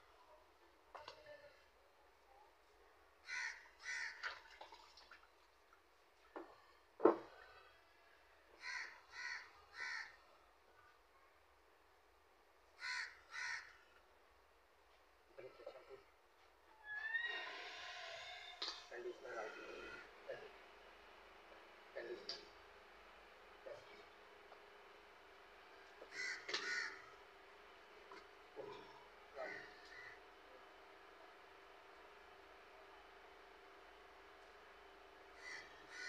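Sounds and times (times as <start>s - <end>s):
crow cawing: 3.2s - 4.3s, 8.5s - 10.2s, 12.8s - 13.9s, 19.4s - 20.1s, 26.0s - 27.2s, 28.7s - 30.2s, 35.4s - 36.0s.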